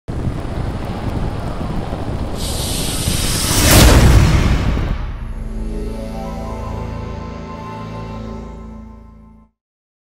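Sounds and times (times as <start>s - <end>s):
hissing rush into a burst: 0.1s - 5.7s
low rumble: 0.1s - 7.8s.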